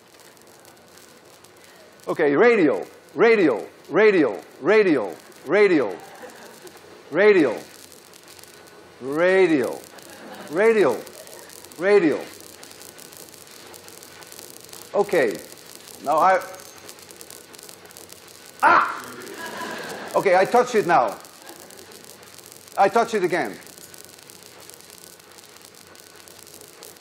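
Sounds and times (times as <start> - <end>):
generator hiss and crackle: 0.0 - 27.0.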